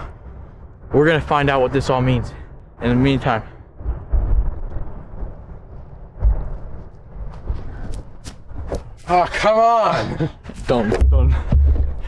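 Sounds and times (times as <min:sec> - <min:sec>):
wind buffeting microphone: 0:00.0 - 0:09.5, 0:10.3 - 0:12.0.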